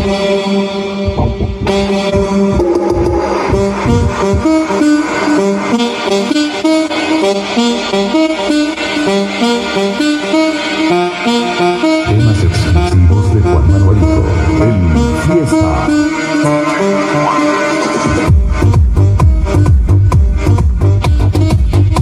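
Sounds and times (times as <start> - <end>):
muffled instrumental tune: 0.0 - 20.0
deep bass: 1.0 - 5.8, 11.8 - 17.0, 18.1 - 22.0.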